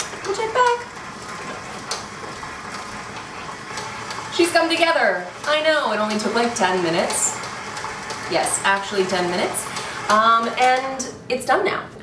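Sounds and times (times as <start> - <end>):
stand mixer running: 0.0 - 11.2.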